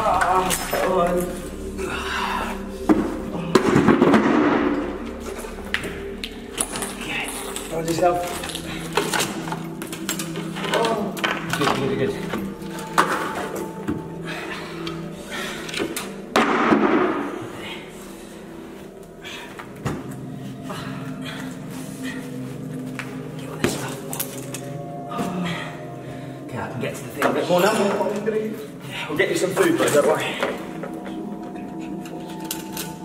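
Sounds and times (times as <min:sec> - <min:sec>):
low background music: 0:00.0 - 0:33.0.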